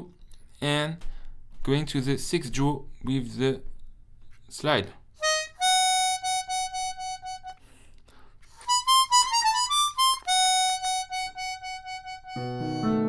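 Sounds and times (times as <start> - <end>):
harmonica melody: 5.2 - 7.8, 8.4 - 13.0.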